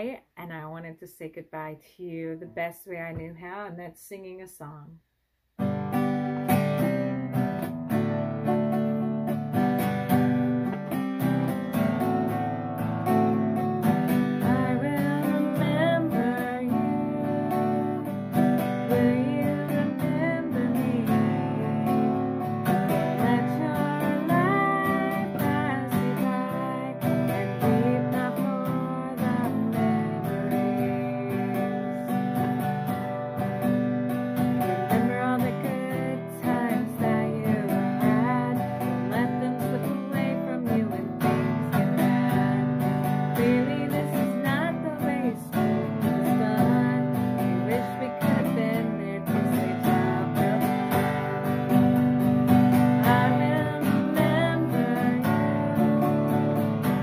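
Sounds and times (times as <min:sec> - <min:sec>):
strummed acoustic guitar: 0:05.6 - 0:57.0
woman singing: 0:13.3 - 0:32.9, 0:34.4 - 0:57.0.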